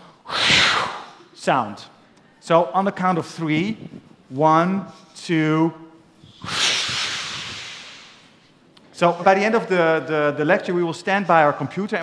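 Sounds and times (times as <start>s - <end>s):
audience making hissing swoosh: 0.3s - 1.2s, 6.2s - 8.4s.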